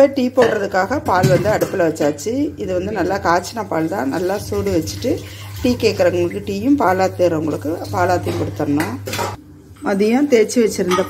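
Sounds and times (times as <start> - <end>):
person talking: 0.0 - 9.2, 9.8 - 11.0
steel kitchen vessels clinking: 0.0 - 11.0.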